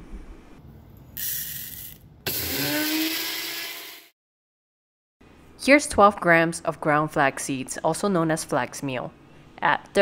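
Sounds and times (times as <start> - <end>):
electric grinder grinding seeds: 1.5 - 4.1.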